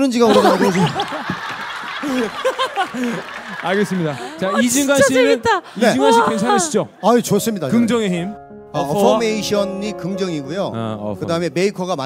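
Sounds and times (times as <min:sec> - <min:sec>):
group of people laughing: 0:00.2 - 0:06.6.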